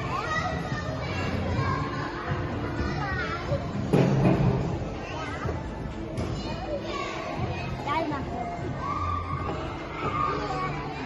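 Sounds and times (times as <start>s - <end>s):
children shouting and chattering: 0.0s - 11.0s.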